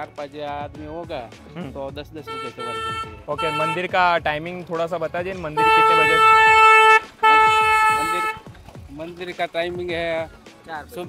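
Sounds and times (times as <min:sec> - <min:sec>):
vehicle horn honking: 0:02.2 - 0:04.1, 0:05.6 - 0:08.5.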